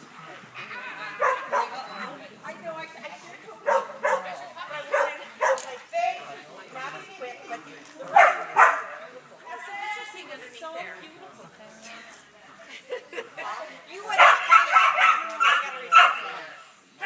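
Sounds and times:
faint voices: 0.0s - 17.0s
dog barking excitedly: 1.2s - 1.8s, 3.6s - 4.3s, 4.9s - 5.7s, 8.2s - 8.9s, 14.1s - 16.3s.

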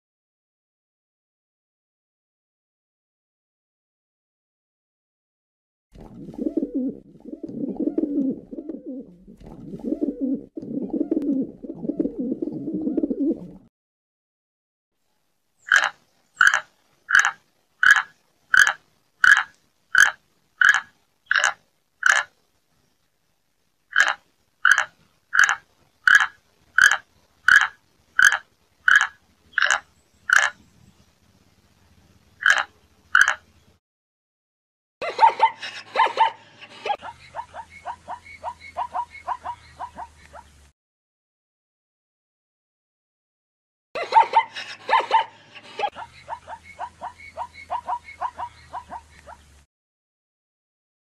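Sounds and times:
pigeons cooing: 6.0s - 13.7s, 44.2s - 49.4s.

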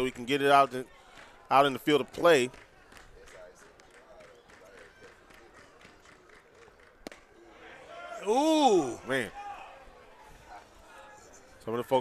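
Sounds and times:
faint crowd chatter: 0.0s - 12.0s
baseball smacking into mitt: 7.0s - 7.3s.

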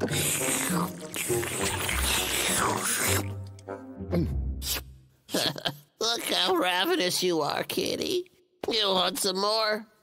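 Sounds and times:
wet slurping and gobbling: 0.0s - 3.7s
background music: 0.0s - 5.9s.

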